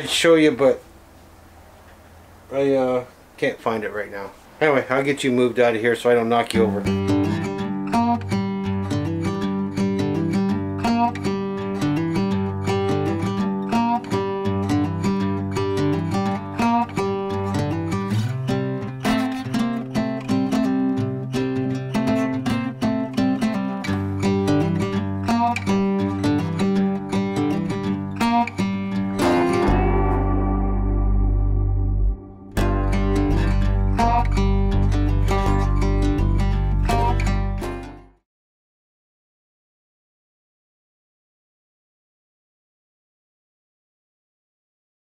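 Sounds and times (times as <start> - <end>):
acoustic guitar music: 5.0 - 38.2
bass line: 29.0 - 38.1.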